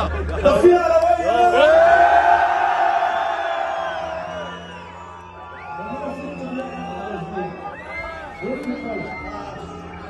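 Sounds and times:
concert crowd: 0.0 - 10.0.

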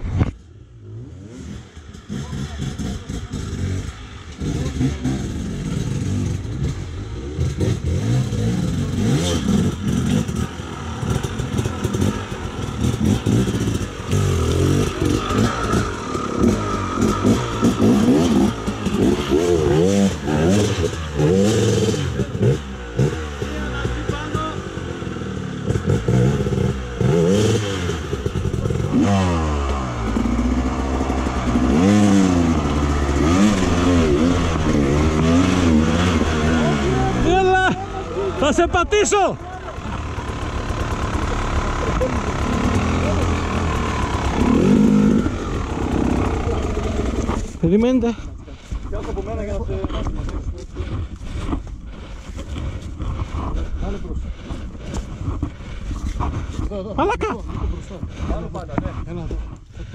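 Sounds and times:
motorcycle engines revving: 0.2 - 59.9.

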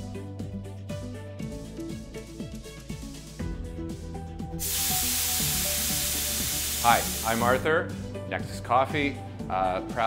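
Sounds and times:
steam wand hissing: 4.6 - 7.6.

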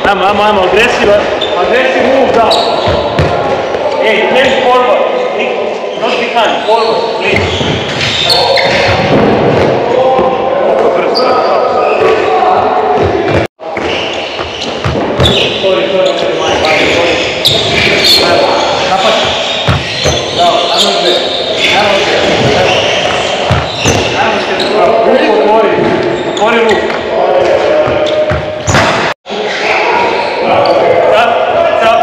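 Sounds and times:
voices calling: 0.0 - 32.0
balls bouncing on wooden floor: 13.0 - 15.5, 19.0 - 20.3, 22.2 - 24.1, 27.8 - 29.0.

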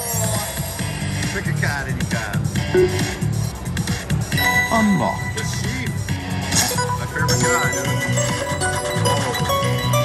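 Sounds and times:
electronic chimes: 2.8 - 3.4
slot machine music: 2.8 - 3.4
background din: 2.8 - 3.6.

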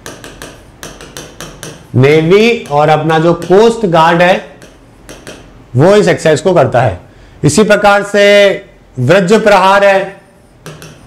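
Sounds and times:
stylus tapping on touchscreen glass: 0.0 - 3.8, 4.5 - 5.5, 10.6 - 11.0.

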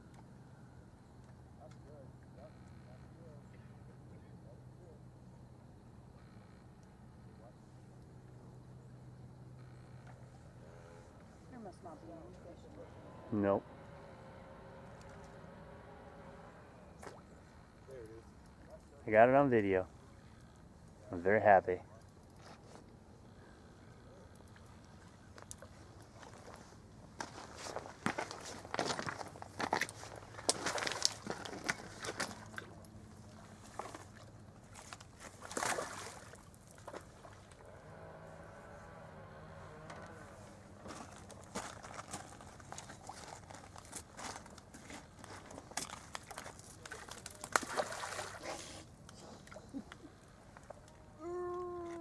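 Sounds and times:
footsteps crunching on gravel: 25.6 - 32.5, 40.8 - 48.2
faint distant voice: 50.7 - 52.0.

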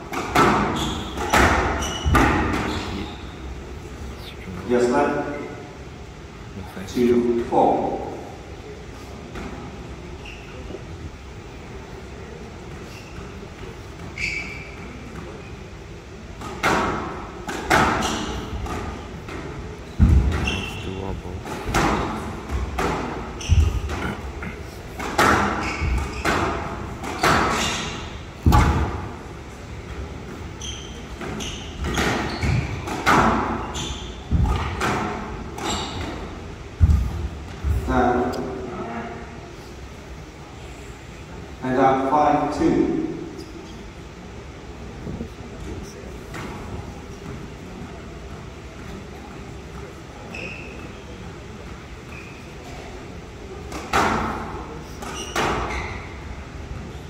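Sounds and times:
shoes squeaking on court floor: 0.1 - 3.6, 10.1 - 10.8, 12.7 - 15.6, 17.5 - 29.1, 29.8 - 38.6, 49.8 - 51.3, 52.0 - 53.0, 54.8 - 56.3.

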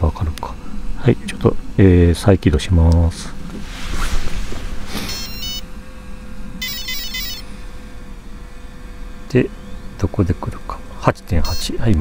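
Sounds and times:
steady low hum: 0.0 - 12.0
electronic power-up beeps: 5.1 - 5.6, 6.6 - 7.5, 11.4 - 11.7.

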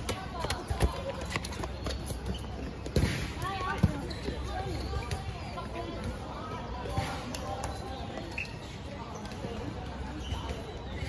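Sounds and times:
ball bouncing on hard court: 0.0 - 6.2.

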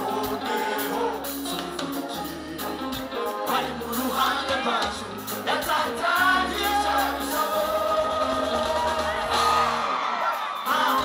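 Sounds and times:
choir singing gospel: 0.0 - 11.0
live band with bass and keyboards: 0.0 - 11.0.

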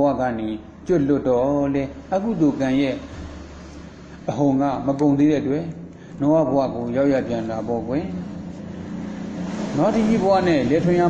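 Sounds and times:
man narrating: 0.0 - 3.1, 4.3 - 8.2, 9.8 - 11.0
steady low hum: 0.0 - 11.0.

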